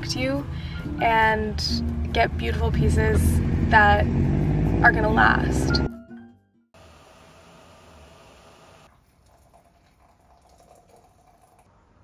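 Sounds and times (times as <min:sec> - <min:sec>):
background music: 0:00.0 - 0:06.6.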